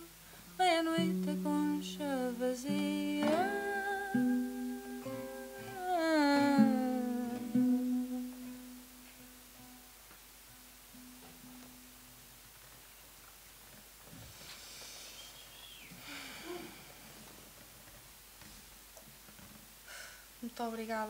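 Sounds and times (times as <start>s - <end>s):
woman humming: 0.0s - 8.8s, 15.2s - 17.0s
plucked guitar notes: 1.0s - 9.0s.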